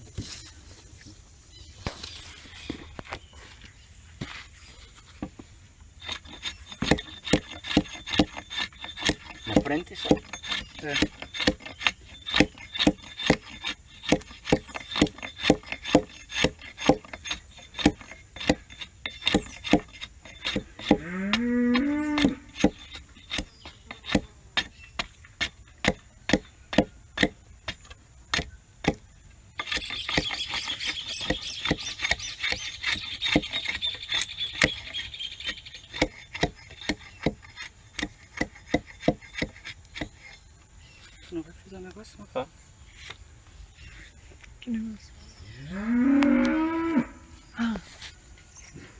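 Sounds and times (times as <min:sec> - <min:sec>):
axe chopping wooden stick: 0:06.1 - 0:35.0, 0:35.9 - 0:40.2.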